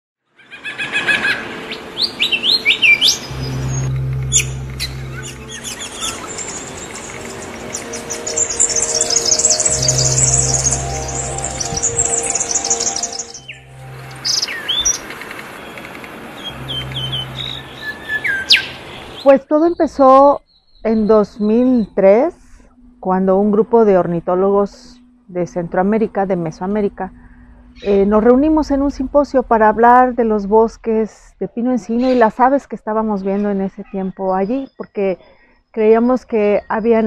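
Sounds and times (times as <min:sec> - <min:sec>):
birds chirping and singing: 0:00.4 - 0:22.2
soft background music: 0:00.8 - 0:35.1
fast high-pitched bird trill: 0:02.0 - 0:15.8.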